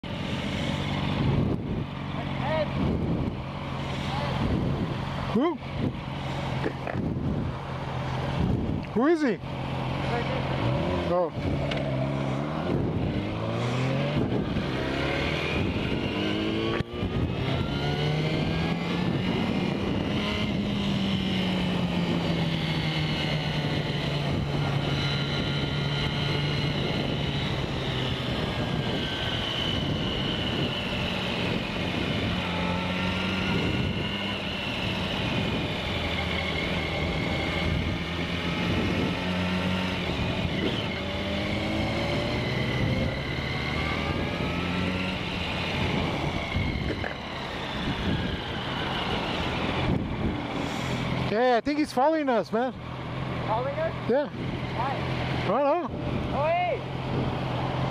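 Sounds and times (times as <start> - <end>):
motorcycle engine revving: 0.0 - 57.9
wind and road noise: 0.0 - 57.9.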